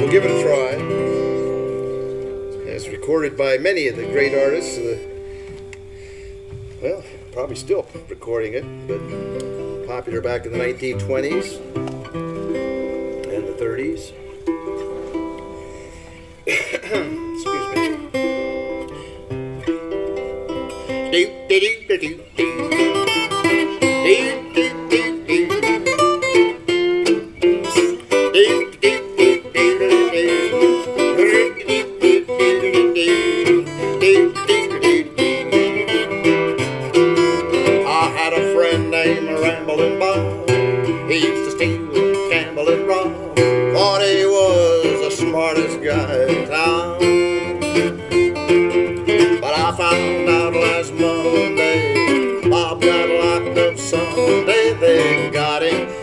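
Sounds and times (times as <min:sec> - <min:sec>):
acoustic string instrument strummed: 0:00.0 - 0:56.0.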